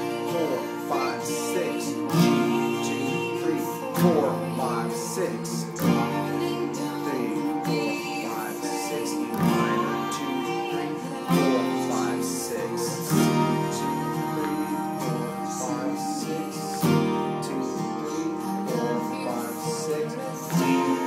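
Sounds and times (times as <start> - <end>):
acoustic guitar strummed slowly: 0.0 - 21.0.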